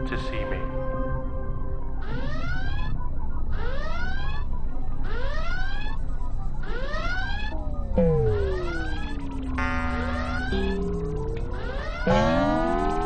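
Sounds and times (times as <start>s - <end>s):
synthesizer tone sweeping upward: 6.6s - 13.0s.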